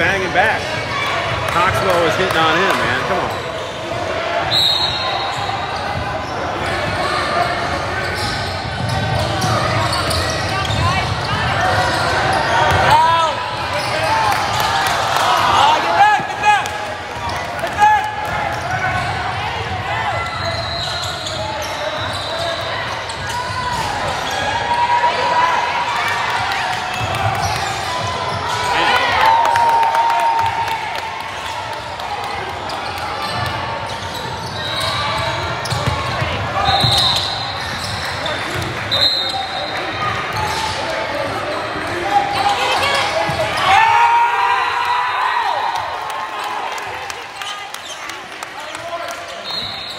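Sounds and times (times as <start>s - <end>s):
voices and shouts echoing: 0.0s - 49.9s.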